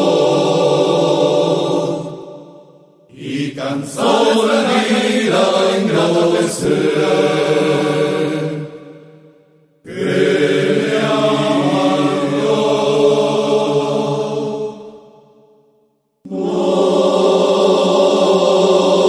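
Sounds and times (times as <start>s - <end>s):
voices holding wordless chords: 0.0s - 9.0s, 9.9s - 15.2s, 16.3s - 19.0s.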